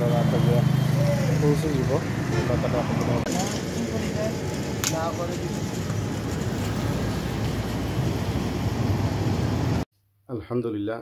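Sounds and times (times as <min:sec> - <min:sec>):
voices talking: 0:00.0 - 0:06.1
vehicle engine hum: 0:00.0 - 0:09.8.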